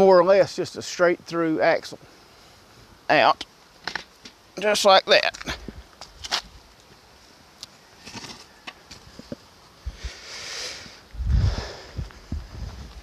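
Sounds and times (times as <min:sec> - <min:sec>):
axle clicking and rustling on gravel: 0:08.0 - 0:09.4.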